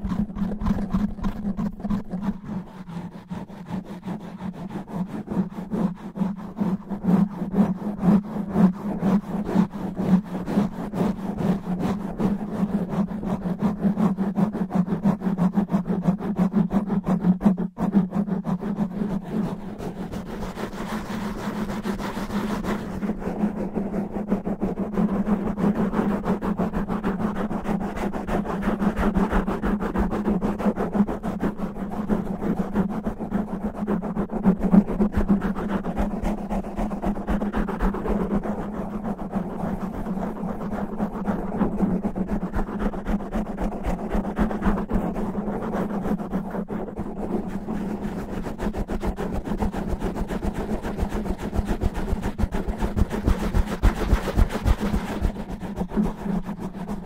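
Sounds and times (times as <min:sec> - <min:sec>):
fingernails scratching microphone windscreen: 0:00.0 - 0:05.1.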